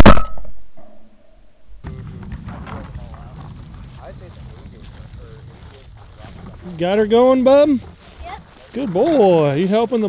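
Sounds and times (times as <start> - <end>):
loud shotgun shot: 0.0 - 0.9
wind rumble on microphone: 1.8 - 9.5.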